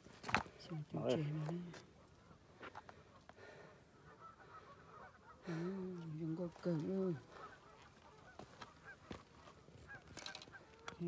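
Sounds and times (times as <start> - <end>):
person speaking: 5.5 - 7.3
faint clicks of fishing tackle: 10.1 - 11.0.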